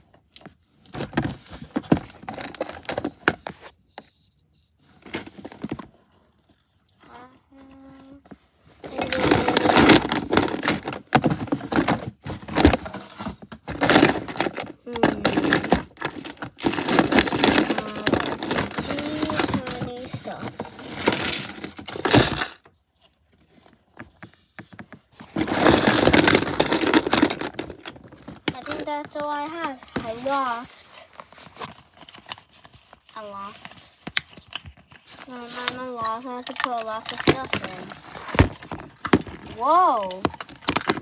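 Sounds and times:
hand rummaging among small toys: 0.0s - 41.0s
plastic crinkling: 25.1s - 41.0s.

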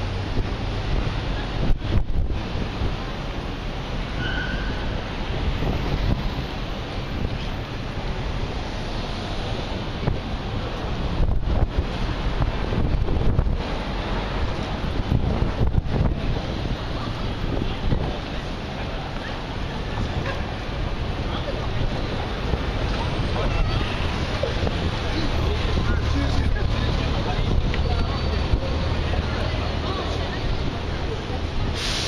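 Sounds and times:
wind buffeting microphone: 0.0s - 8.6s, 9.2s - 31.7s
busy pedestrian street din: 0.0s - 32.0s.

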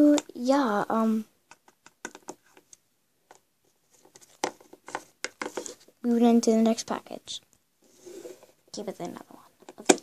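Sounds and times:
plastic toy figures tapping: 1.5s - 2.7s.

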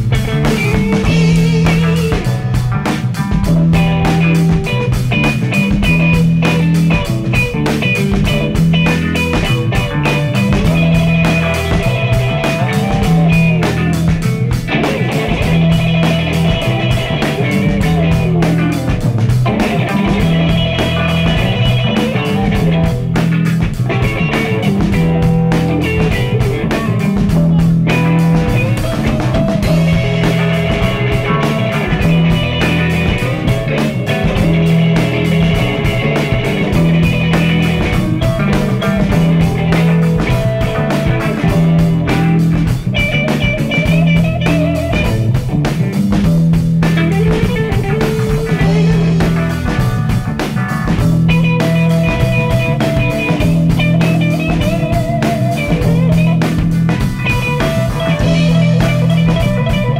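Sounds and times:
drum kit steady beat: 0.0s - 59.9s
electric guitars playing: 0.0s - 59.9s.

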